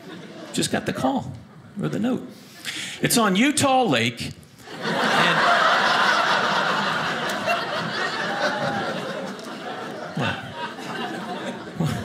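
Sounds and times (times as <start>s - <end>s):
audience laughing: 4.6s - 12.0s.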